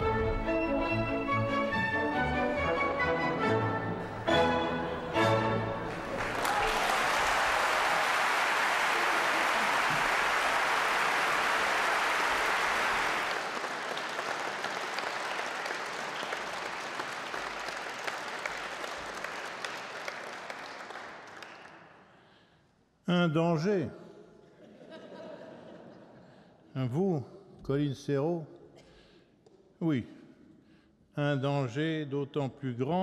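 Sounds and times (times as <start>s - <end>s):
audience applauding: 5.2s - 22.1s.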